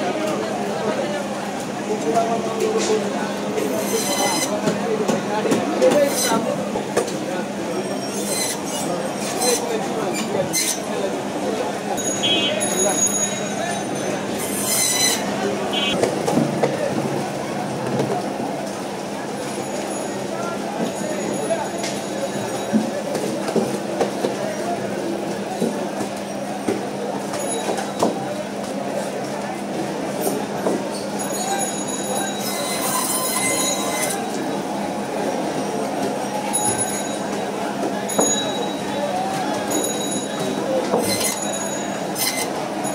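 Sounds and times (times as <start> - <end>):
band saw squealing: 12.0 - 16.0, 41.0 - 42.5.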